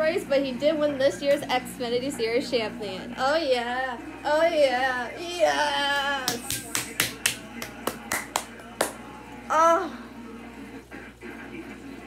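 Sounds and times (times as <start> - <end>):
quick hand clapping: 6.2 - 9.0.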